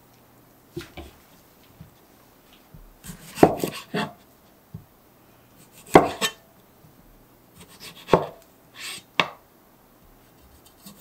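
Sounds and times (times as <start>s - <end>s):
knife slicing tomato: 3.0s - 4.2s, 5.6s - 6.4s, 7.6s - 9.3s, 10.3s - 11.0s
knife blade scraping: 3.1s - 4.2s, 5.7s - 6.4s, 7.6s - 9.1s, 10.5s - 11.0s
knife knocking on cutting board: 5.9s - 6.3s, 8.1s - 8.4s, 9.2s - 9.4s.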